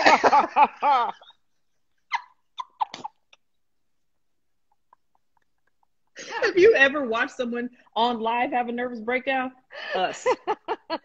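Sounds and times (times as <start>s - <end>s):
women laughing: 0.0s - 2.3s, 9.8s - 11.0s.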